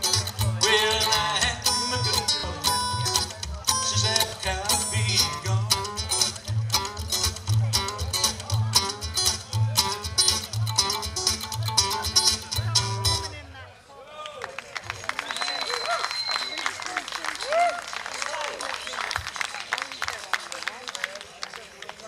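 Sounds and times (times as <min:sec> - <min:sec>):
upright bass pulsing: 0:00.0 - 0:13.4
acoustic guitar: 0:00.0 - 0:13.5
light applause: 0:14.0 - 0:22.0.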